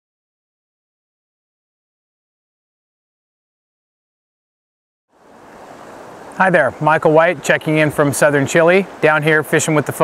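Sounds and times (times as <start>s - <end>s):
steady outdoor hiss: 5.1s - 10.0s.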